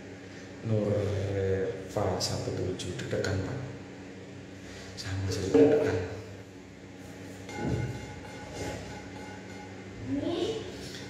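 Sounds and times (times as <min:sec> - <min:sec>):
machine-like hum: 0:00.0 - 0:11.0.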